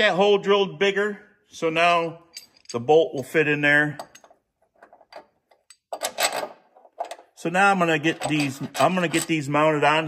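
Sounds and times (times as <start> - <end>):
metallic clicks of bolt and bracket: 2.3 - 7.4.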